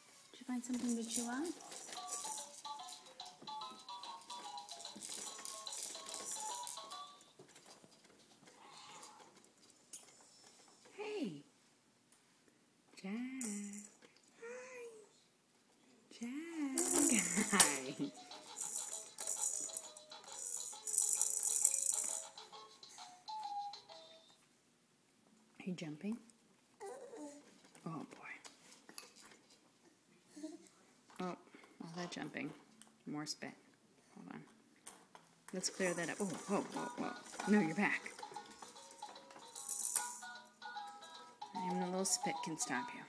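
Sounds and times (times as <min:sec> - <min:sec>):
shaker sound: 0:00.4 - 0:03.4, 0:04.3 - 0:07.0, 0:16.7 - 0:22.4, 0:35.6 - 0:40.3
high rattle: 0:04.7 - 0:07.0, 0:16.8 - 0:22.4, 0:35.8 - 0:40.4
faint electronic toy tune: 0:21.8 - 0:24.4, 0:37.5 - 0:43.0
electronic toy tune: 0:40.1 - 0:43.0.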